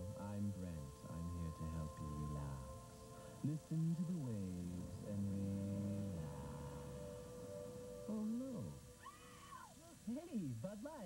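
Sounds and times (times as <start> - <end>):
calm voice speaking: 0.0 - 2.8, 3.4 - 7.0
steady droning tone: 0.0 - 9.0.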